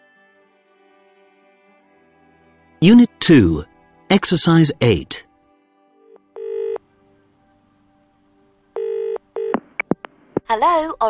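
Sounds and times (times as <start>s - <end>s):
telephone ringing: 6.4s - 6.8s, 8.8s - 9.6s.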